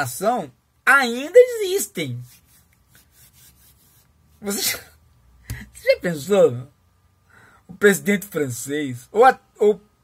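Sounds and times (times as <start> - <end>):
person speaking: 0.0 - 6.8
hands rubbing together: 2.1 - 4.7.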